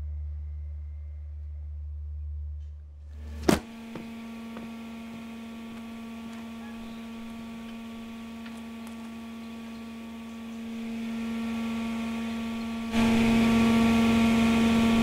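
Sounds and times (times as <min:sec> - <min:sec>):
low hum with overtones: 0:00.0 - 0:15.0.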